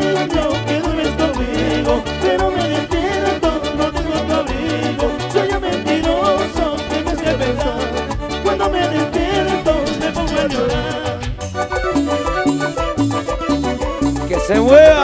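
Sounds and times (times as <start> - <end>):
latin dance band playing: 0.0 - 15.0
electric bass line: 1.5 - 13.4
wavering melody line: 3.0 - 14.2.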